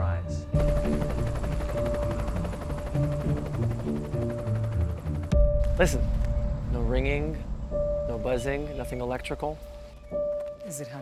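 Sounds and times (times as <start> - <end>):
helicopter rotor chop: 0.6 - 7.4.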